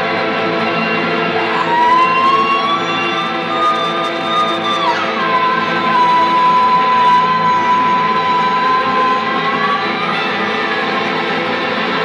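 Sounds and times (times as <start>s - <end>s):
electric guitar drone: 0.0s - 12.0s.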